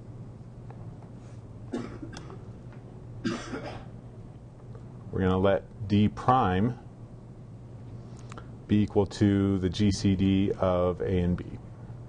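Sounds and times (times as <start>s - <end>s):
low room hum: 0.0s - 12.0s
person coughing: 1.7s - 2.5s, 3.2s - 4.0s.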